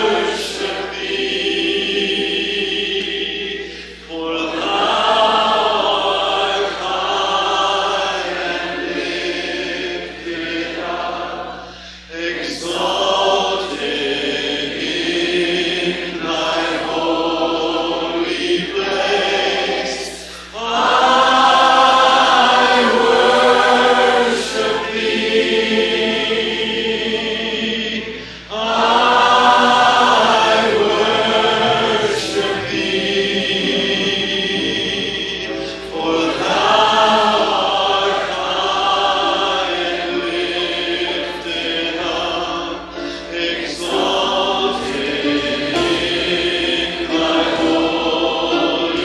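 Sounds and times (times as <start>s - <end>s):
congregation singing: 0.0s - 49.0s.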